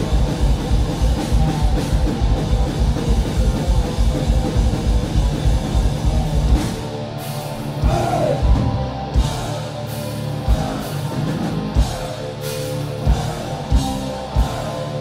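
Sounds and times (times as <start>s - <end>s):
distorted electric guitar riffing: 0.0s - 15.0s.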